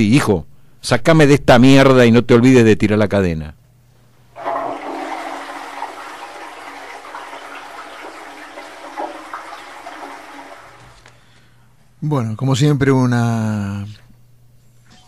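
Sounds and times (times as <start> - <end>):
toilet flushing: 4.3 - 11.2.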